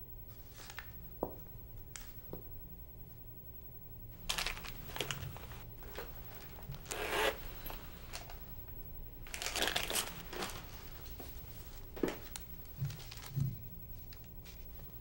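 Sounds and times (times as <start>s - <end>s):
paper rustling and crinkling: 4.2s - 7.0s, 9.2s - 15.0s.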